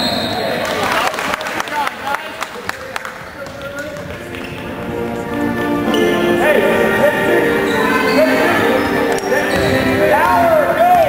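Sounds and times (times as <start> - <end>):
spectators' voices and calls: 0.0 - 11.0.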